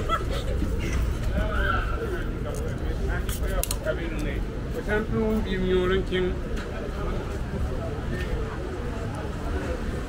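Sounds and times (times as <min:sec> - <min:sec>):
low rumble of street noise: 0:00.0 - 0:10.0
passers-by talking: 0:00.0 - 0:10.0.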